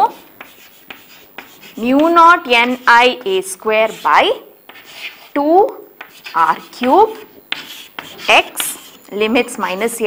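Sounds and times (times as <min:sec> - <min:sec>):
chalk scratching on chalkboard: 0:00.0 - 0:05.4, 0:06.0 - 0:10.0
chalk tapping on board: 0:00.1 - 0:04.1, 0:04.7 - 0:05.4, 0:06.0 - 0:09.0.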